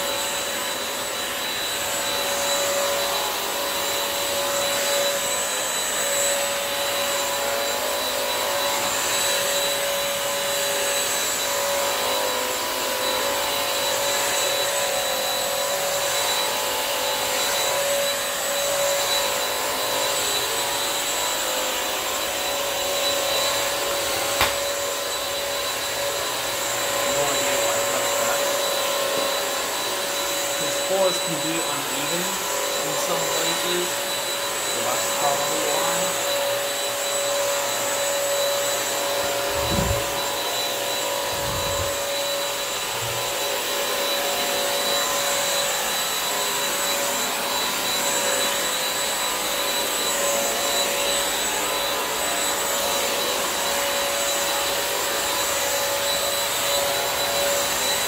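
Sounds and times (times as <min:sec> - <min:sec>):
mop vacuum running: 0:00.0 - 0:58.0.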